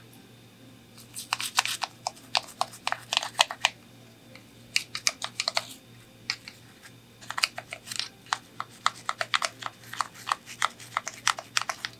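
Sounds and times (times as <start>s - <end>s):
toothbrush scrubbing in water: 1.0s - 3.7s, 6.4s - 11.9s.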